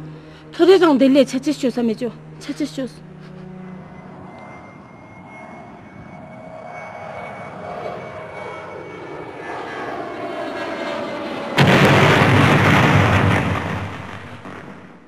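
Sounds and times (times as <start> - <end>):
engine-like drone: 0.0 - 14.9.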